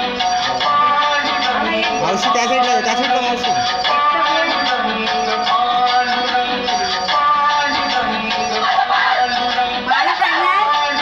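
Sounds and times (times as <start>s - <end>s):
sung melody with accompaniment: 0.0s - 11.0s.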